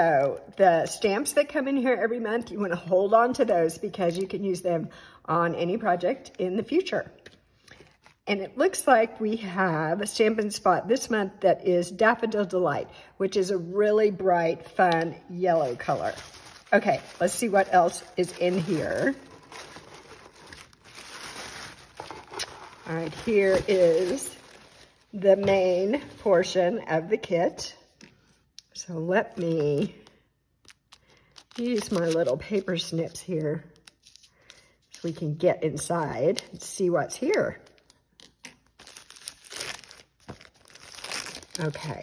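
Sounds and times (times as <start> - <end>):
paper and plastic rustling: 15.5 - 26.4, 30.9 - 32.9
plastic packaging crinkling: 15.5 - 26.4, 29.3 - 32.9, 37.6 - 42.0.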